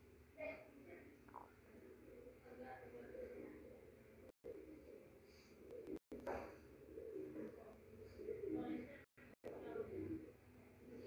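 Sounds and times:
bird cooing: 0:01.4 - 0:11.0.

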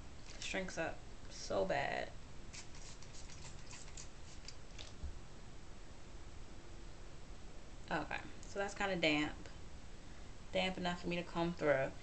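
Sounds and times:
hair crackling as rubbed: 0:02.5 - 0:05.0.

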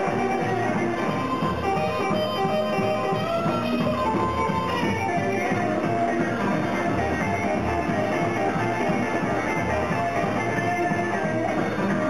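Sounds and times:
drum kit: 0:00.0 - 0:12.0
electric guitar: 0:00.0 - 0:12.0
rockabilly band playing live: 0:00.0 - 0:12.0
upright double bass: 0:00.0 - 0:12.0.

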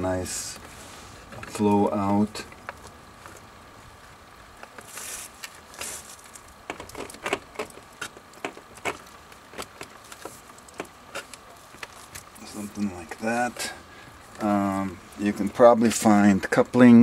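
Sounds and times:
plastic tubing clicking and creaking: 0:06.6 - 0:12.3.

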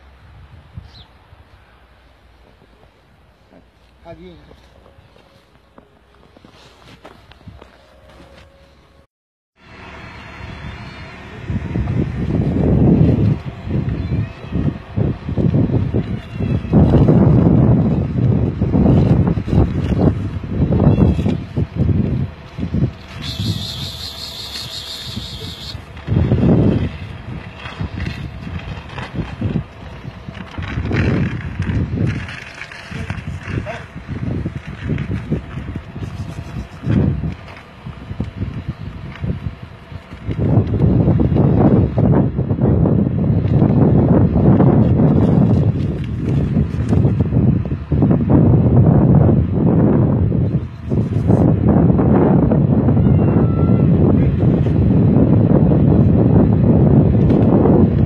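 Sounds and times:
wind buffeting microphone: 0:00.0 - 0:01.6, 0:09.9 - 0:58.0
brief high hiss: 0:23.1 - 0:25.8.

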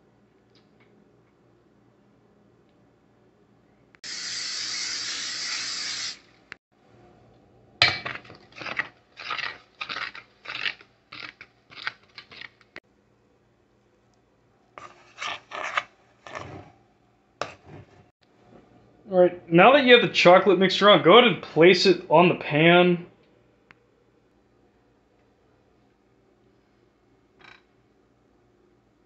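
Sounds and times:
steady hiss: 0:04.0 - 0:06.4
utensil scraping batter in pot: 0:14.8 - 0:16.8, 0:17.4 - 0:18.1.

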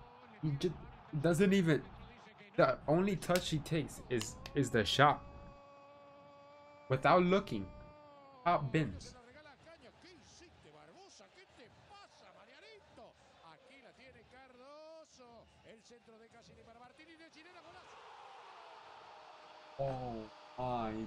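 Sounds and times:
faint football commentary: 0:00.0 - 0:05.3, 0:06.9 - 0:07.8, 0:08.4 - 0:18.0, 0:19.6 - 0:21.0.

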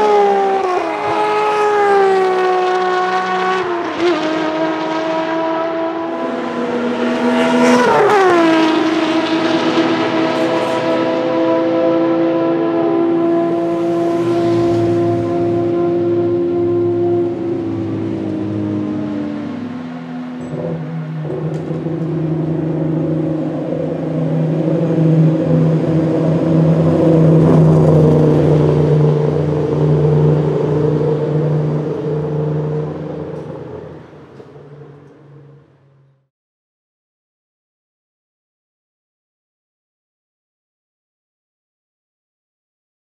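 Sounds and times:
race car engine passing by: 0:00.0 - 0:36.1.

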